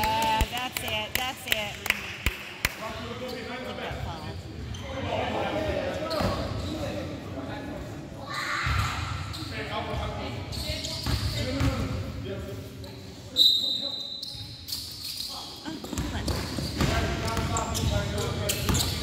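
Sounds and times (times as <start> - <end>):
voices calling out in a hall: 3.0 - 11.9, 12.8 - 19.0
basketball bouncing on court: 11.0 - 11.9, 15.8 - 19.0.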